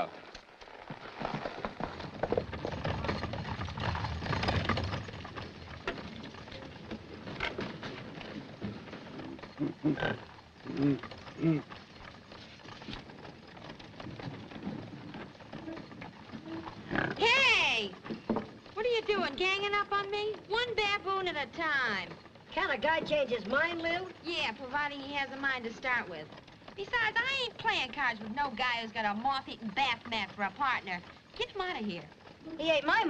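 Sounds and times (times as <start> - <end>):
horse hoofbeats: 0.0 - 33.0
short grunts: 9.6 - 11.7.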